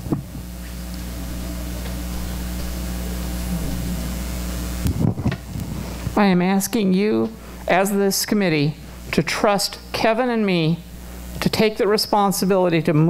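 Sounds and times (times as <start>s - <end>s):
microphone handling knocks: 0.0s - 0.4s
electrical hum: 0.0s - 13.0s.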